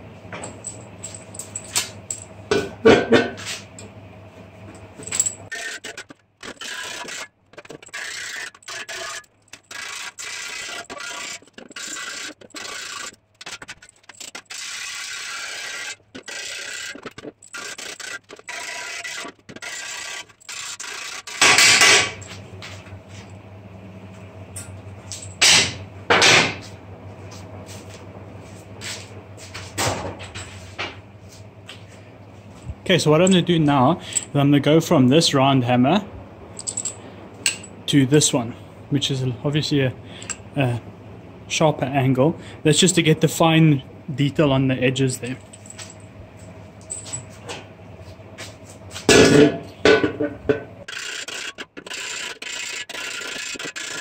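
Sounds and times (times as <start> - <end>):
steady low hum: 0.0 - 54.0
electric grinder grinding steel: 5.5 - 22.3, 50.8 - 54.0.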